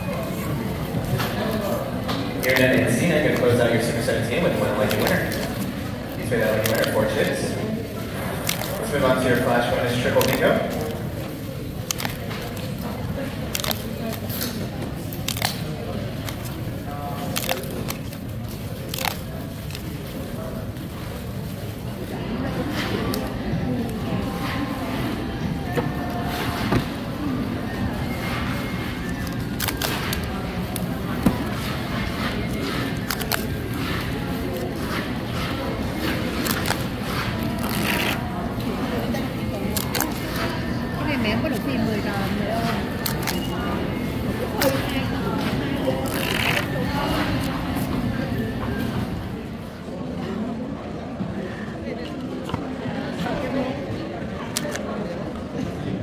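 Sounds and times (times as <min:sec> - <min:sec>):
murmur of voices: 0:00.0 - 0:56.0
paper tabs tearing: 0:04.5 - 0:07.4, 0:08.3 - 0:20.2, 0:28.4 - 0:38.4, 0:39.5 - 0:40.6, 0:42.6 - 0:43.6, 0:44.5 - 0:47.6.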